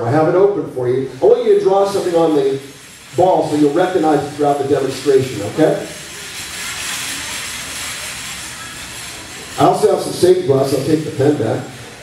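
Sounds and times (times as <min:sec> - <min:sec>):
room ambience rushing noise: 0:00.0 - 0:12.0.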